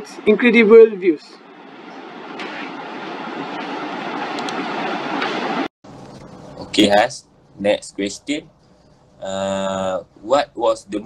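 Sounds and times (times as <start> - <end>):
steady rushing noise: 0.0 - 9.2.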